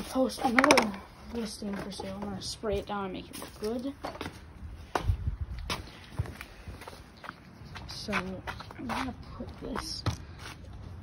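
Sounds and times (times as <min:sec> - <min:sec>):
footsteps on concrete: 0:00.0 - 0:11.0.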